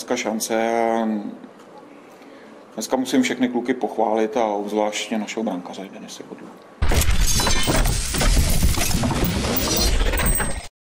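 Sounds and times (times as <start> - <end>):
bright clatter: 6.8 - 10.7
loud crash: 6.8 - 10.7.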